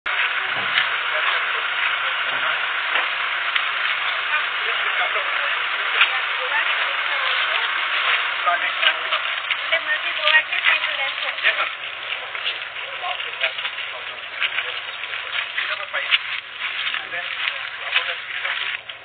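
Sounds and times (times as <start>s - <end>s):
indistinct voices talking: 0.0s - 19.0s
loud steady hiss: 0.1s - 19.0s.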